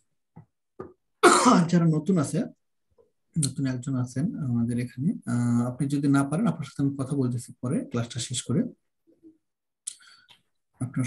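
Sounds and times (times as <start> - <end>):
person clearing throat: 1.2 - 1.7.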